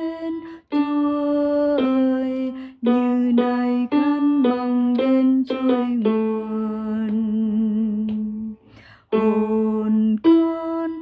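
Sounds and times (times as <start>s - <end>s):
short breath: 8.6s - 9.1s.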